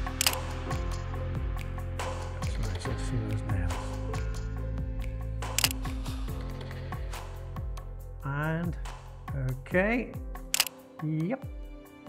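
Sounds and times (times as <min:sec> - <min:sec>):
background music sustained tones: 0:00.0 - 0:12.0
camera shutter double click: 0:00.1 - 0:00.5, 0:05.4 - 0:05.9, 0:10.5 - 0:10.8.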